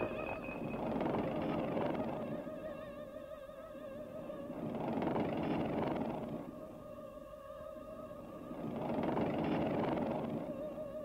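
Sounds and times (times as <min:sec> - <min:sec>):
dense noisy rumble: 0:00.0 - 0:02.9, 0:03.9 - 0:07.2, 0:08.0 - 0:11.0.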